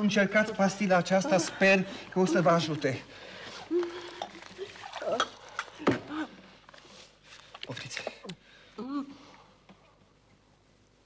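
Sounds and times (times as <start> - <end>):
person making throaty noises: 1.2 - 6.4
water pouring into a glass: 3.6 - 5.8.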